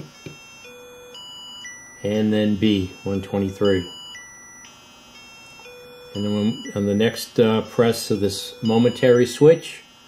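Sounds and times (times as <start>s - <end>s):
faint electronic tones: 0.0s - 10.0s.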